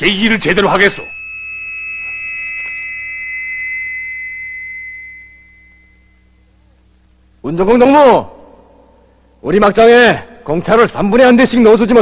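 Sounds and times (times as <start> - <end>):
high-pitched synthesized tone: 0.8 - 6.4.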